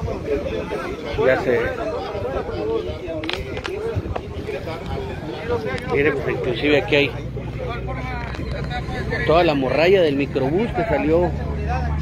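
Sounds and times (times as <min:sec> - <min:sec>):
bystanders talking: 0:00.0 - 0:12.0.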